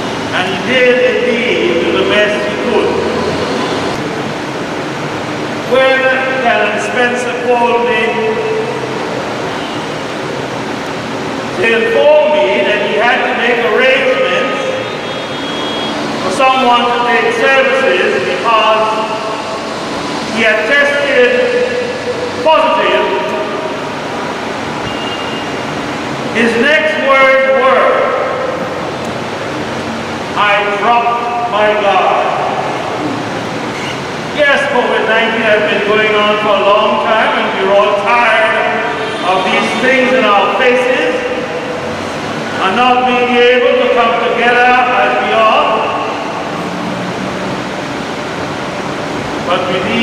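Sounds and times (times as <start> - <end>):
rushing background noise: 0.0 - 50.0
man speaking into a microphone: 0.3 - 3.3, 5.7 - 8.8, 11.5 - 14.9, 16.2 - 19.5, 20.3 - 23.7, 26.3 - 28.6, 30.3 - 32.9, 34.3 - 41.8, 42.5 - 46.4, 49.4 - 50.0.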